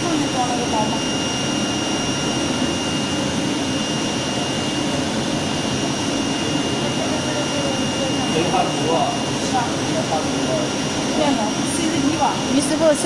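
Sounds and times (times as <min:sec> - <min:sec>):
high machine whine: 0:00.0 - 0:13.0.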